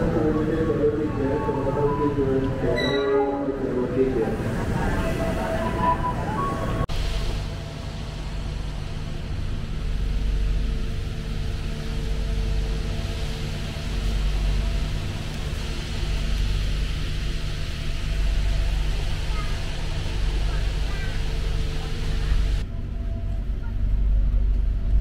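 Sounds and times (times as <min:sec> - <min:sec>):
train coach rumble and hum: 0:00.0 - 0:25.0
brief tonal sound: 0:01.8 - 0:03.5.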